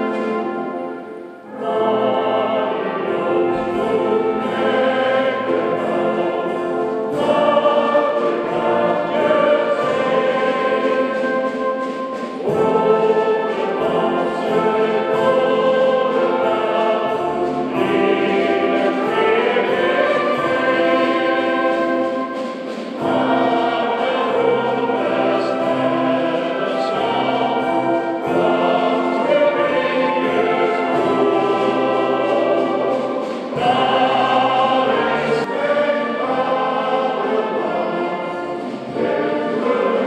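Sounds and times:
choir singing a hymn-like song: 0.0s - 40.0s
instrumental accompaniment: 0.0s - 40.0s.

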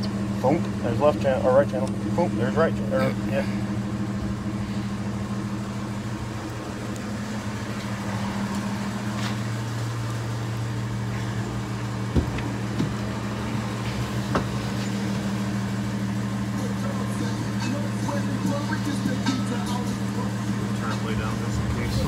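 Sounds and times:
vehicle idling hum: 0.0s - 22.0s.

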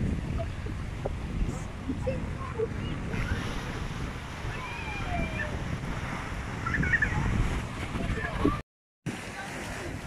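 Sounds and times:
wind rumbling on microphone: 0.0s - 10.0s
sea waves breaking on rocks: 0.8s - 10.0s.

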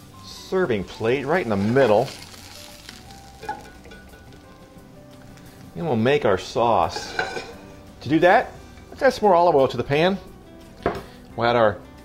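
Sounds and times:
oil sizzling in a skillet: 0.0s - 11.3s.

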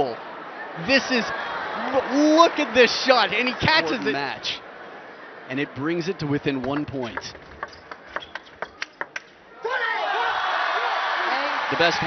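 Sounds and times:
crowd cheering with applause: 0.0s - 4.4s, 9.6s - 12.0s
table tennis ball clicks: 6.6s - 9.4s.

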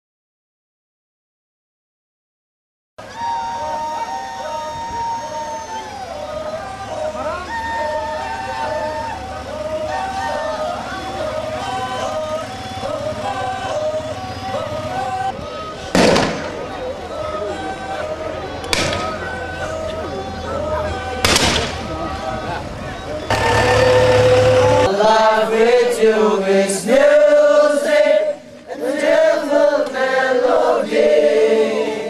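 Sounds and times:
crowd singing a hymn: 3.0s - 32.0s
long held musical note: 16.1s - 25.4s
low hum: 23.3s - 25.9s.

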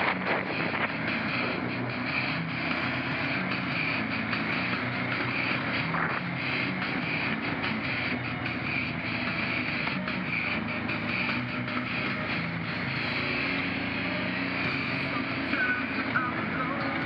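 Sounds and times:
atv engine running: 0.0s - 17.0s
heavy metal music: 0.0s - 17.0s.

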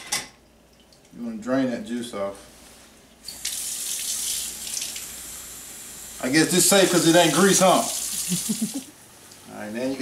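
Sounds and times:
faucet water running into sink: 3.3s - 5.2s, 6.2s - 9.4s.

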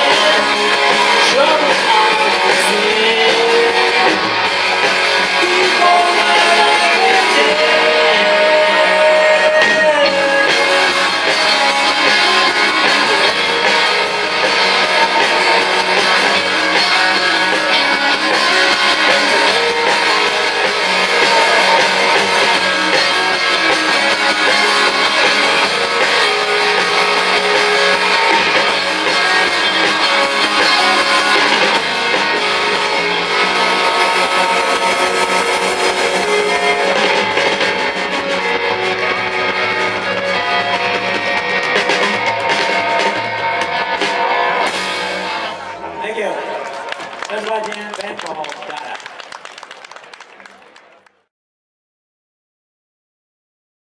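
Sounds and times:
drum kit: 0.0s - 45.6s
bass guitar: 0.0s - 49.3s
electric guitars: 0.0s - 50.6s.

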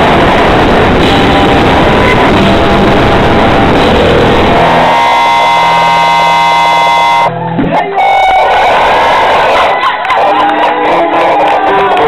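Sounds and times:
crowd noise with voices: 0.0s - 12.0s.

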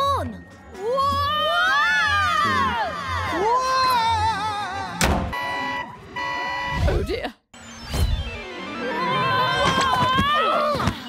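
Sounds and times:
electronic alarm buzzer beeps: 5.4s - 6.9s.

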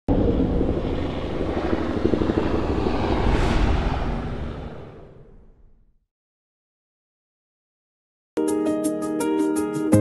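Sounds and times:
helicopter rotor chopping: 0.1s - 5.7s
rising whoosh: 0.6s - 6.0s.

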